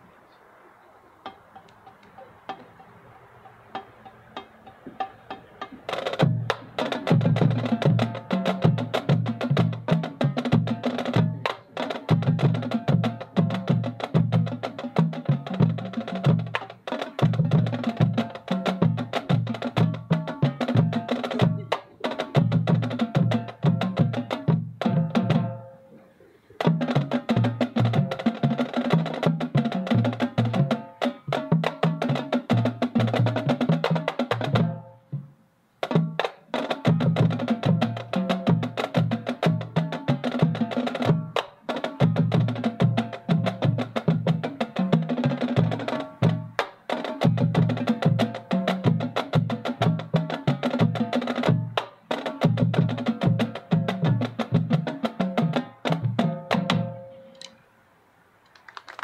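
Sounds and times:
marching band playing: 0:01.2 - 0:25.7, 0:26.6 - 0:57.1
drums and mallet percussion: 0:01.3 - 0:25.7, 0:26.6 - 0:35.2, 0:35.8 - 0:57.5.

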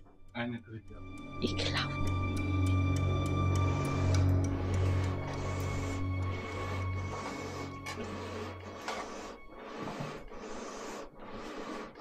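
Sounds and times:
bellows blowing air: 0:03.5 - 0:12.0.

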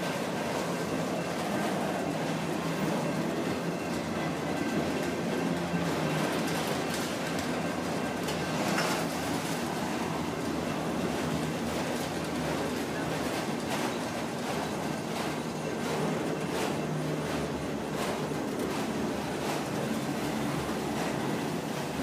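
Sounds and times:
freight train wheels on rail: 0:00.0 - 0:22.0.

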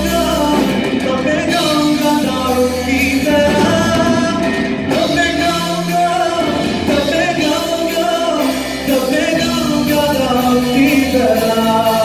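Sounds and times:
drum kit: 0:00.0 - 0:12.0
guitar: 0:00.0 - 0:12.0
keyboard: 0:00.0 - 0:12.0
man singing into microphone: 0:00.0 - 0:12.0.

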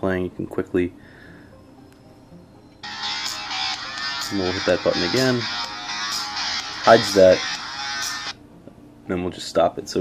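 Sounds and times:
music through phone loudspeaker: 0:02.8 - 0:08.4.

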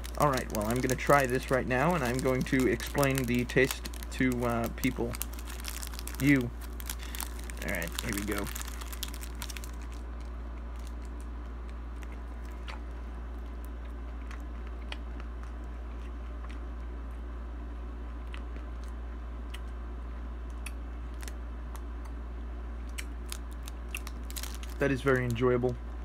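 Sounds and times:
person chewing ice cream: 0:00.0 - 0:24.8
steady low hum: 0:00.0 - 0:26.0.

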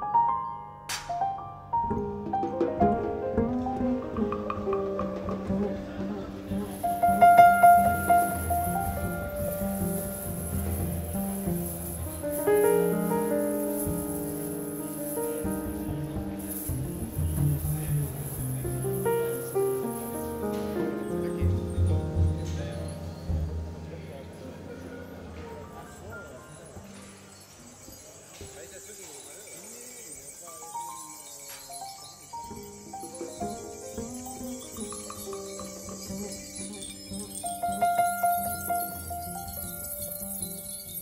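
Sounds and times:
piano music: 0:00.0 - 0:41.0.

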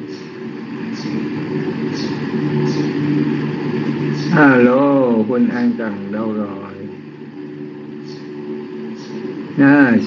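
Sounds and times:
faint high hissy pulses: 0:00.0 - 0:10.0
held low tones: 0:00.0 - 0:10.0
steady low engine hum: 0:00.0 - 0:10.0.

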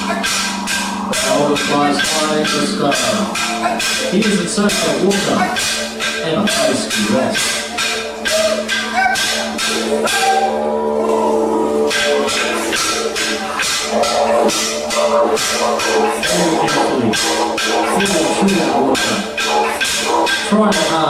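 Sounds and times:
didgeridoo drone: 0:00.0 - 0:21.0
rhythmic percussion clicks: 0:00.0 - 0:21.0.

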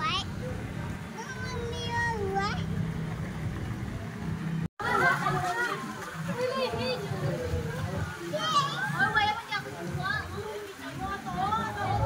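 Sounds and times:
children calling and chattering: 0:00.0 - 0:03.0, 0:04.8 - 0:12.0.

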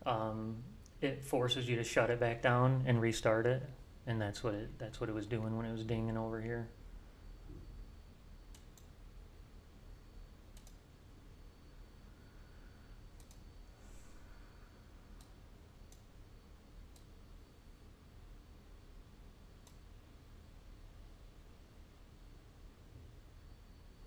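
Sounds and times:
low room hum: 0:00.0 - 0:24.0
computer mouse clicks: 0:08.5 - 0:08.9, 0:10.5 - 0:10.8, 0:13.1 - 0:13.5, 0:15.2 - 0:16.1, 0:16.9 - 0:17.2, 0:19.6 - 0:19.9.

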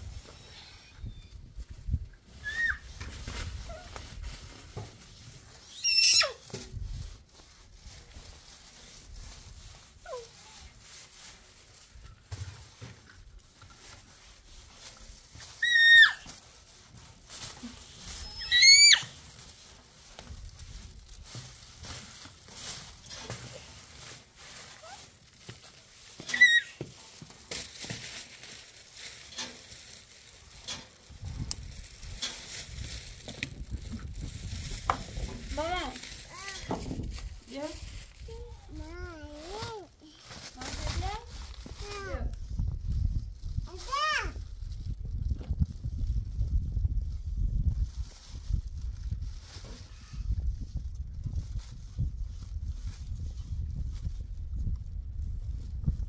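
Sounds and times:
sharp high squeaks: 0:26.2 - 0:26.8.

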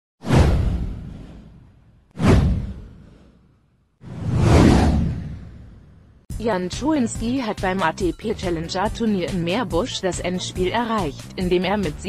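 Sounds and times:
falling whoosh: 0:00.2 - 0:06.2.

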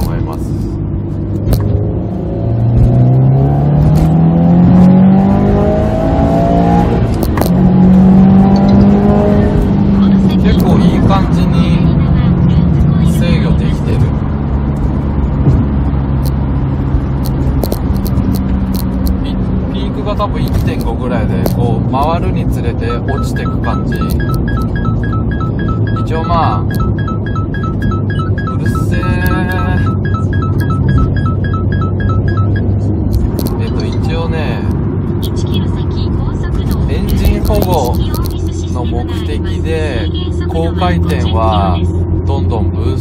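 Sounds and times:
turbocharged car engine revving: 0:00.0 - 0:43.0.

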